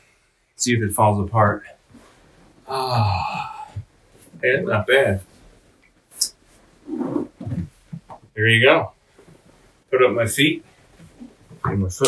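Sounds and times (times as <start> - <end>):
man grunting: 2.7 - 3.8.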